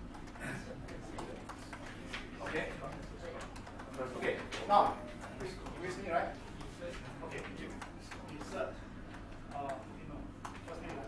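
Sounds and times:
people talking quietly: 0:00.3 - 0:11.0.

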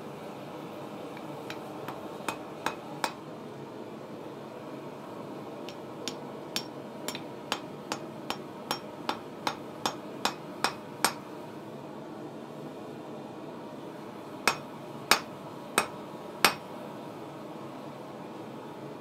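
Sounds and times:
hammer striking steel on anvil: 0:01.5 - 0:03.2, 0:05.7 - 0:11.3, 0:14.5 - 0:16.6.

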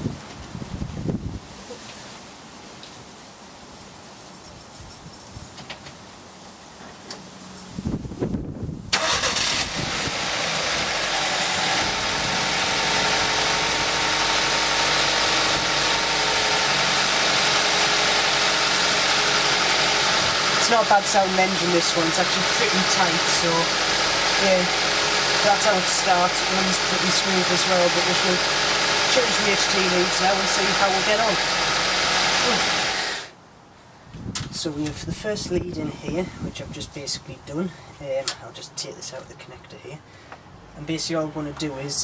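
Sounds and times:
car engine cranking and idling: 0:08.9 - 0:33.4.

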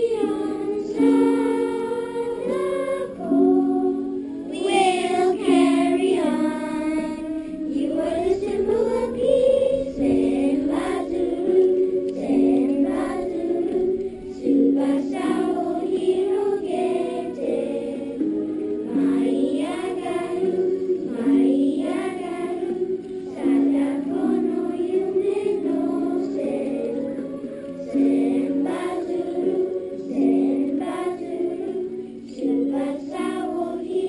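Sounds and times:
children singing in unison: 0:00.0 - 0:34.0.

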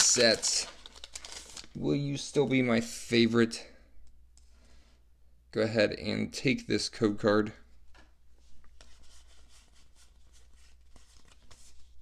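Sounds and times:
trading cards sliding and rubbing: 0:08.4 - 0:12.0.

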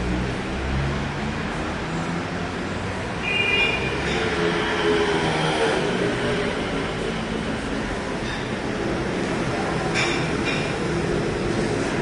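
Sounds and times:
street traffic: 0:00.0 - 0:12.0
heavy vehicle rumbling past: 0:03.8 - 0:12.0.

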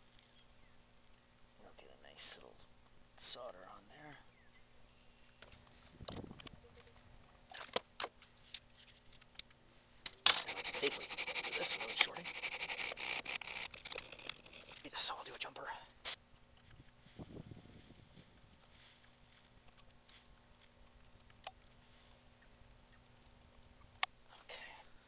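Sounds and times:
metal file scraping terminal: 0:10.1 - 0:15.0.

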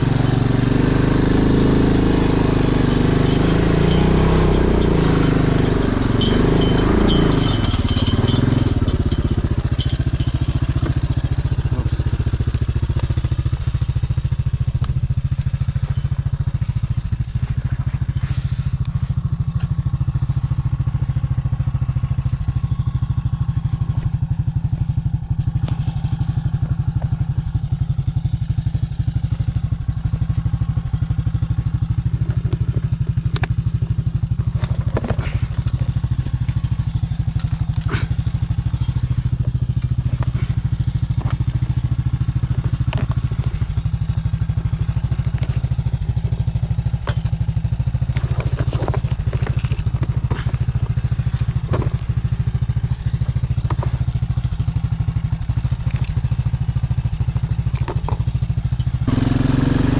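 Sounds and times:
atv engine idling: 0:00.0 - 0:59.9
gear knocking and clattering: 0:01.8 - 0:59.6.

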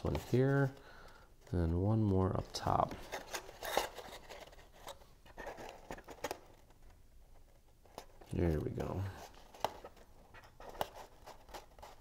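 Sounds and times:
cardstock rustling and ticking: 0:00.0 - 0:12.0.

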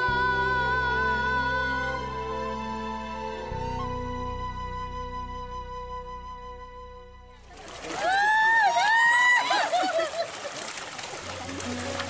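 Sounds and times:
fish splashing water: 0:07.4 - 0:12.0.

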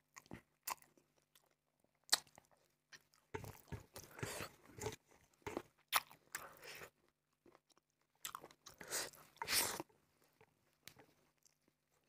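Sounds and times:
chewing food: 0:00.0 - 0:12.0.

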